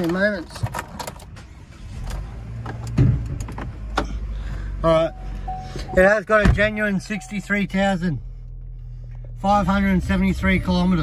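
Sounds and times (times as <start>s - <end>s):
car engine starting and idling: 0.0s - 11.0s.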